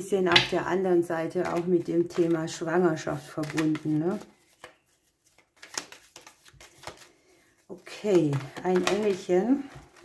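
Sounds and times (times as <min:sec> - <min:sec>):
playing cards rustling and snapping: 0:01.3 - 0:10.0.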